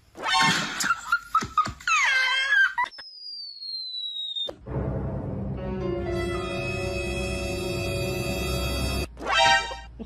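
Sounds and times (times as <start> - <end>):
long thin falling whistle tone: 2.9 - 4.5
music: 4.6 - 9.1.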